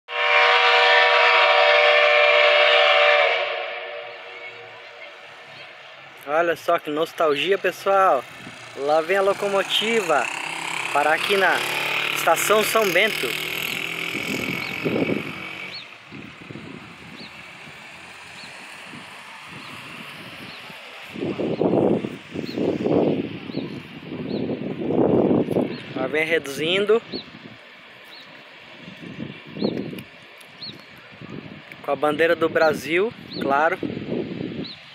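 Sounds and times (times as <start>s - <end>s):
steam locomotive whistle: 0.1s - 4.9s, 13.6s - 15.9s
low rush of noise: 3.3s - 34.9s
bird chirping: 13.5s - 16.0s, 27.1s - 27.4s.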